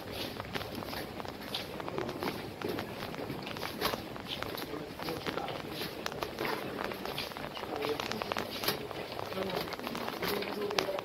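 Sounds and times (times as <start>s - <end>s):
footsteps on hard floor: 0.0s - 11.0s
luggage trolley rolling: 0.0s - 11.0s.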